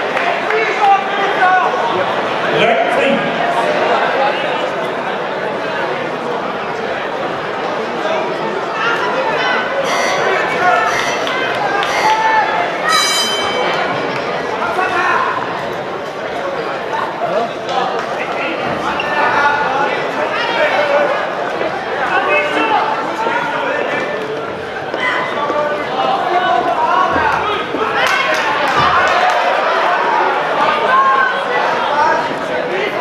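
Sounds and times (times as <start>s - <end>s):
spectators shouting: 8.7s - 15.5s.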